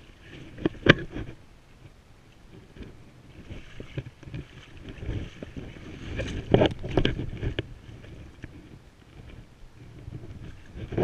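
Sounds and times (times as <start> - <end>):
water splashing against hull: 0.0 - 11.0
wind buffeting microphone: 2.5 - 11.0.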